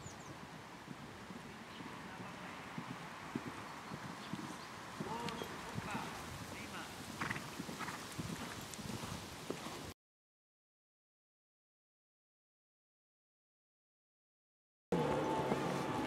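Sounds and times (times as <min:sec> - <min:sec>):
horse hoofbeats on sand: 0:00.9 - 0:09.9, 0:15.0 - 0:16.0.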